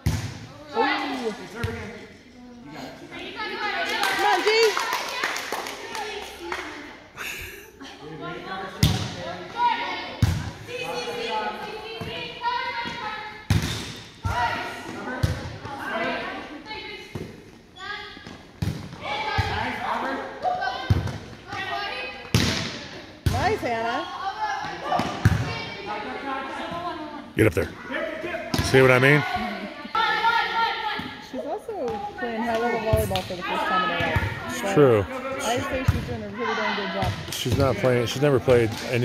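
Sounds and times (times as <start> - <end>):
volleyballs thudding on gym floor: 0.0 - 0.5, 12.8 - 15.8, 18.2 - 19.8, 20.8 - 23.8, 24.6 - 25.6
chatter: 19.0 - 39.0.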